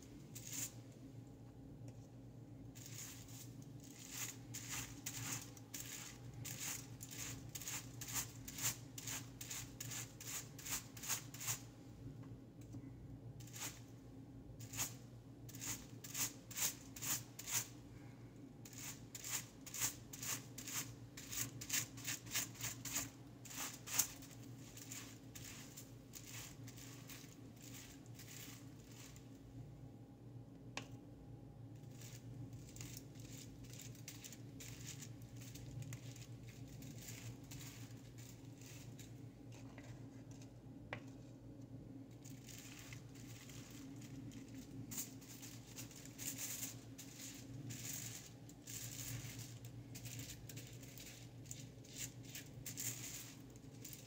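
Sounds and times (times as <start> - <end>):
wet brush strokes: 0.0 - 1.1, 2.8 - 11.7, 18.7 - 29.3
foil crinkling: 20.5 - 29.3, 31.9 - 39.8, 42.2 - 54.0.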